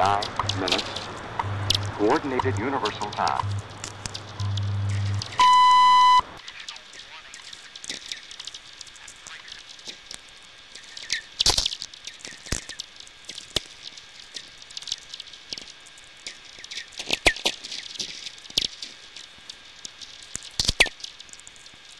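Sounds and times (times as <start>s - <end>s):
steady radio hiss: 0.0s - 14.6s
radio crackle of sferics: 0.0s - 21.9s
falling radio pings: 4.3s - 6.9s.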